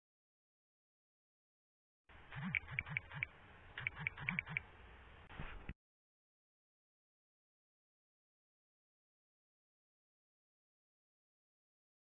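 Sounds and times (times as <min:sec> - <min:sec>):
short click-like burst: 0:02.3 - 0:04.7
keyboard key clicks: 0:02.4 - 0:04.6.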